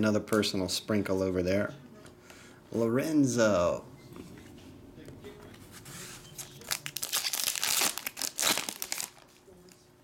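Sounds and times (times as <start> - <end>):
foil wrapper crinkling: 6.4 - 9.4.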